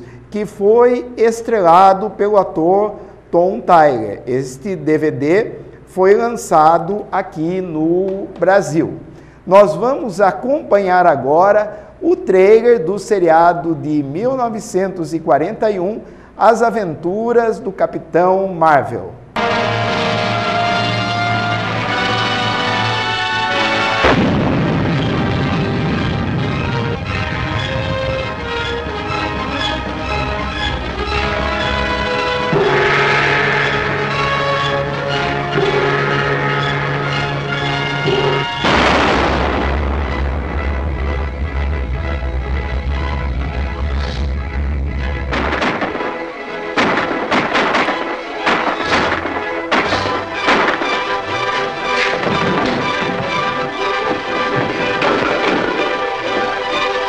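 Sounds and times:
orchestral music: 19.4s - 57.0s
sharp crashing hits: 23.4s - 29.9s, 30.8s - 57.0s
explosion blast: 23.5s - 29.3s, 32.5s - 34.6s, 35.5s - 57.0s
long rough rumble: 24.0s - 46.6s.

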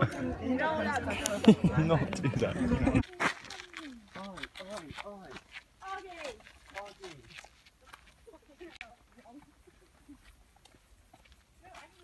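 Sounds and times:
faint voices of people walking: 0.0s - 12.0s.

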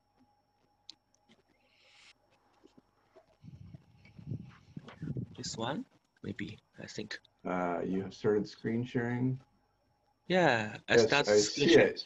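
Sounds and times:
low thumps: 3.4s - 5.6s.

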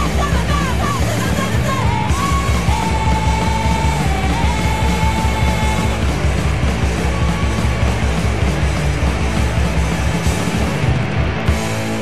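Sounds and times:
punk band playing: 0.0s - 12.0s.

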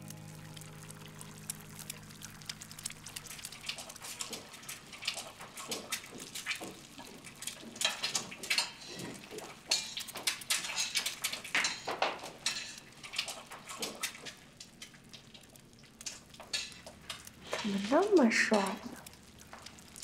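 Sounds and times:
soft background music: 0.0s - 3.9s.

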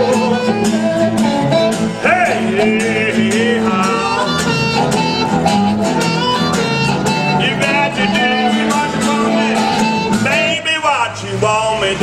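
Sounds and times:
electric guitar: 0.0s - 10.6s
blues harmonica: 0.0s - 10.7s
strummed acoustic guitar: 0.0s - 12.0s.

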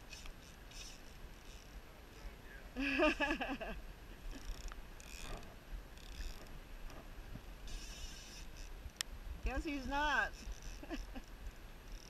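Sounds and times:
fishing reel drag ratcheting: 0.0s - 1.8s, 4.3s - 6.6s, 7.6s - 12.0s.

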